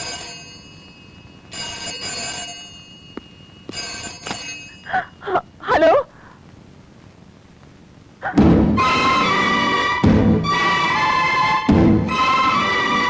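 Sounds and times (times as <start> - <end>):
telephone bell ringing: 0.0 - 5.4
person speaking: 4.9 - 6.3.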